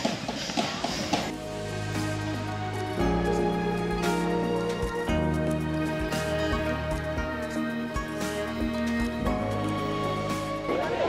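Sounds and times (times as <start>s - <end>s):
soft background music: 0.8s - 11.0s.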